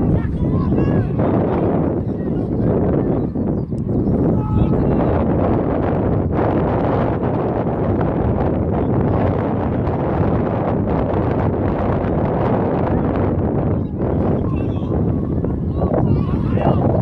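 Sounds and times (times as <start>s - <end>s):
wind blowing across microphone: 0.0s - 17.0s.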